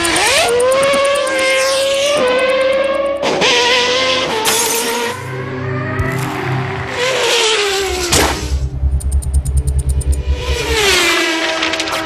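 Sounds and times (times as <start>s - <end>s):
background music: 2.2s - 12.0s.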